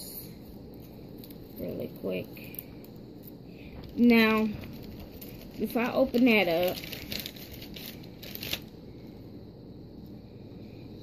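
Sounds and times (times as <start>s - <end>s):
plastic packaging crinkling: 3.8s - 8.8s.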